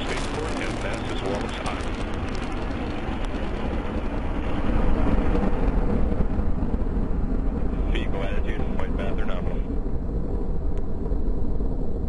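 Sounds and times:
rocket exhaust rumble: 0:00.0 - 0:12.0.

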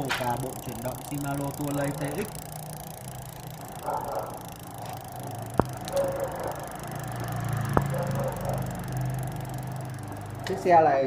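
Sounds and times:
sharp clicks: 0:00.0 - 0:10.7
bicycle chain running over cassette: 0:00.0 - 0:11.0.

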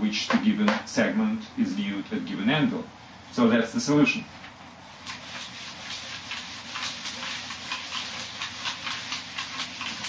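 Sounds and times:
eraser wiping whiteboard: 0:05.0 - 0:10.0.

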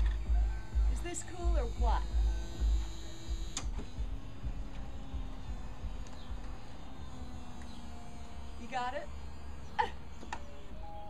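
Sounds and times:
convertible top motor hum: 0:00.0 - 0:11.0.

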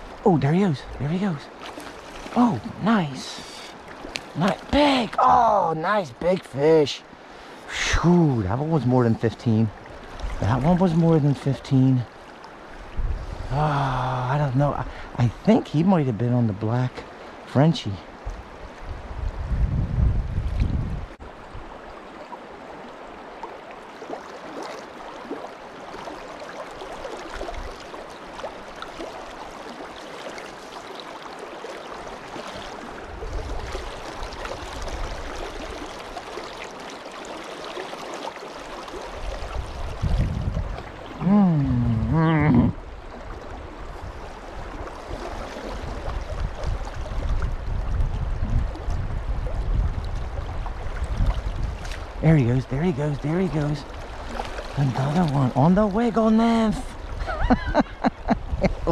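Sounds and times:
creek water running over rocks: 0:00.0 - 0:19.5, 0:20.5 - 0:58.9
person's voice without words: 0:04.4 - 0:06.0, 0:41.2 - 0:42.8.

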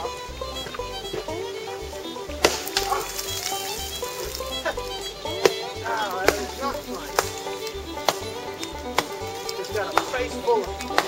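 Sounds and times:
bluegrass fiddle music: 0:00.0 - 0:11.0
pick striking rock: 0:00.0 - 0:11.0.

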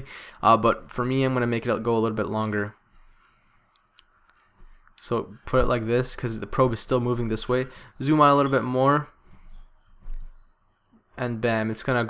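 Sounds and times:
soft breath-like noise: 0:00.0 - 0:00.5, 0:02.6 - 0:06.5, 0:07.4 - 0:10.8.

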